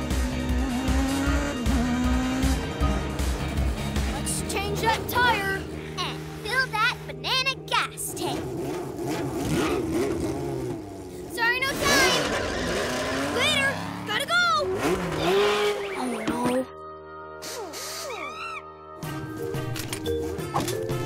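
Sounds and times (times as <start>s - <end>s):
cartoon background music: 0.0s - 9.9s, 11.4s - 21.0s
cartoon car sound effects: 8.0s - 10.8s, 11.4s - 16.7s.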